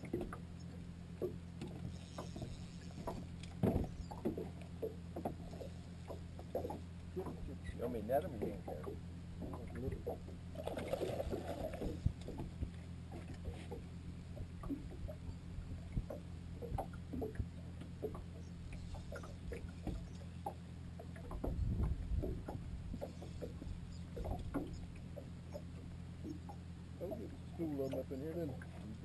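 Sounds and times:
boat engine hum: 0.0 - 29.0
light taps and knocks: 1.2 - 7.5, 8.2 - 10.4.

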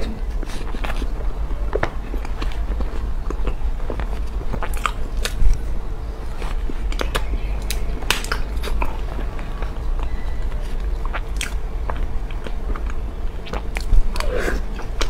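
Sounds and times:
wet sticky eating sounds: 0.3 - 15.0.

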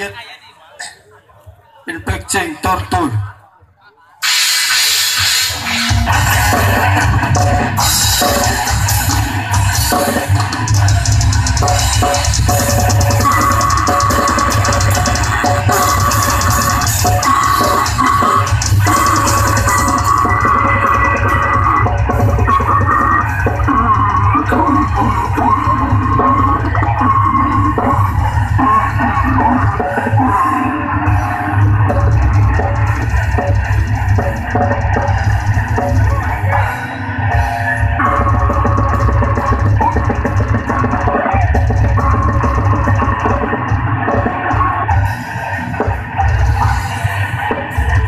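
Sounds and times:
distorted electric guitar: 4.2 - 48.0
heavy metal band playing live: 4.2 - 48.0
fast drumming on drum kit: 5.2 - 48.0.

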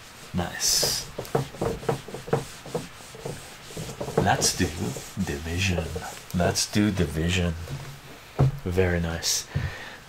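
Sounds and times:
eraser wiping whiteboard: 0.0 - 7.9.

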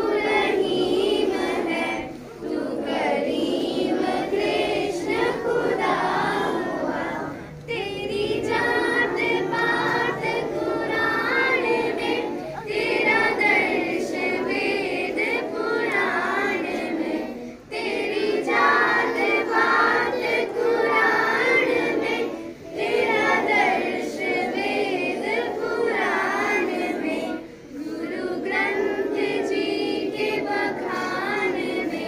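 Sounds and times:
children singing together: 0.0 - 32.0.

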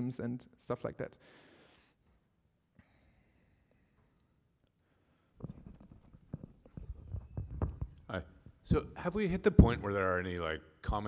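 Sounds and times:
microphone handling thumps: 5.4 - 9.9.

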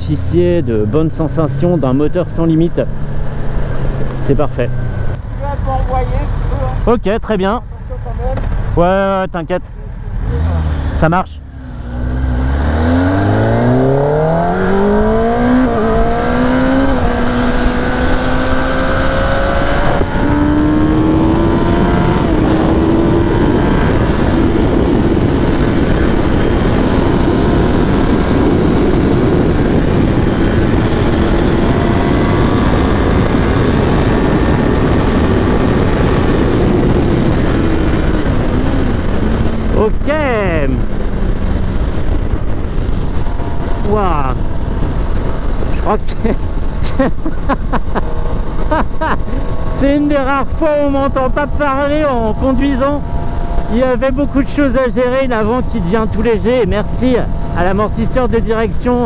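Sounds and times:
motorcycle engine accelerating: 0.0 - 59.0
wind rush: 8.4 - 59.0.

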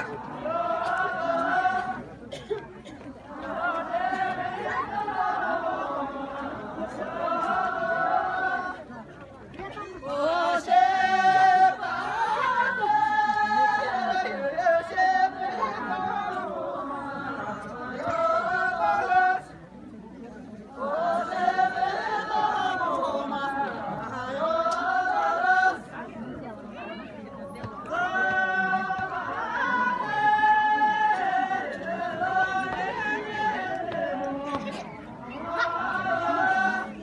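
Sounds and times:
group of voices singing: 0.0 - 2.5, 3.2 - 9.2, 10.0 - 19.6, 20.7 - 26.6, 27.3 - 37.0
crowd chatter: 0.0 - 37.0.

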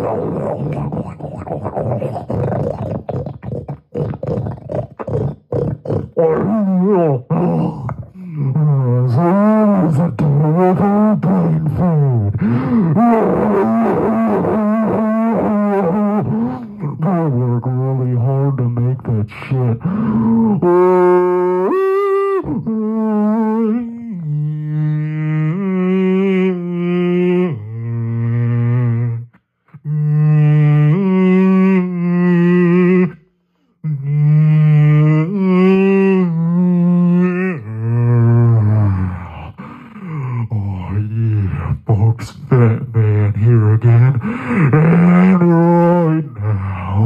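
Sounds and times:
man singing held notes: 0.0 - 33.2, 33.8 - 47.0
man's harsh gravelly vocalizing: 0.0 - 33.2, 33.8 - 47.0.

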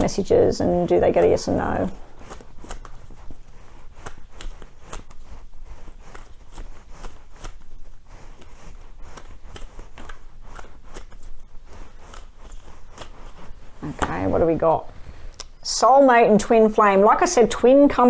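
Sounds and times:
cards being shuffled: 0.0 - 14.4.

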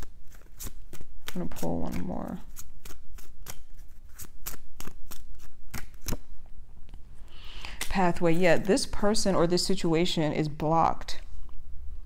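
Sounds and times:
cards being shuffled: 0.0 - 8.9.

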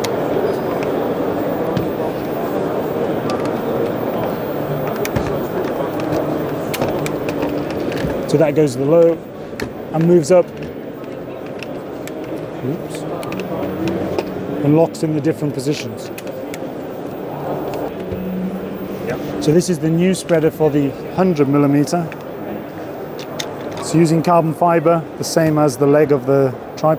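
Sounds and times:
low held hum: 0.0 - 24.0
exhibition hall chatter: 0.0 - 26.9.

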